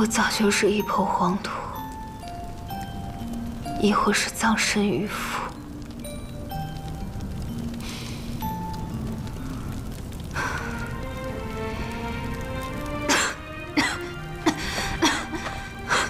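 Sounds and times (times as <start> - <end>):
soft background music: 0.0 - 16.0
woman coughing: 13.1 - 16.0.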